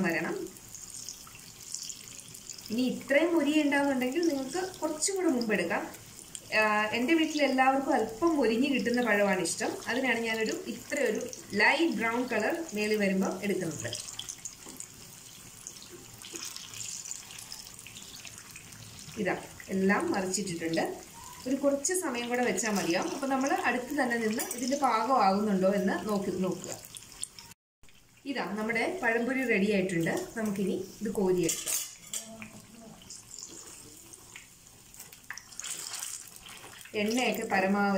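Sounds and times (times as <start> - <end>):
fritters sizzling in hot oil: 0.0 - 37.9.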